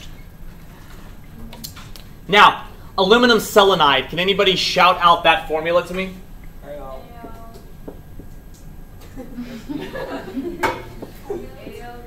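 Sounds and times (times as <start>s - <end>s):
marker tapping board: 7.2s - 8.4s.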